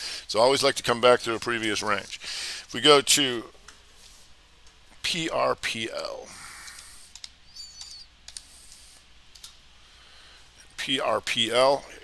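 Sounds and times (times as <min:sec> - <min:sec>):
computer keyboard clicks: 0:06.7 - 0:09.6.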